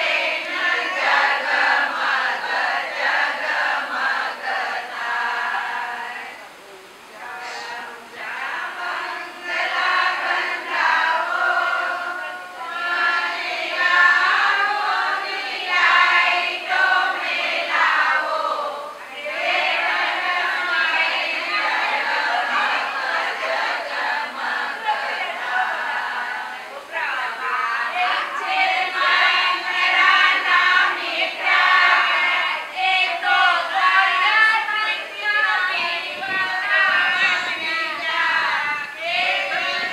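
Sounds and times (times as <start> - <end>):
group singing long notes: 0.0 - 39.9.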